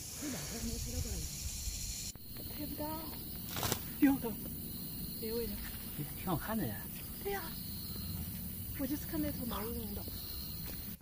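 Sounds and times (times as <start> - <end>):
night insects chorus: 0.0 - 11.0.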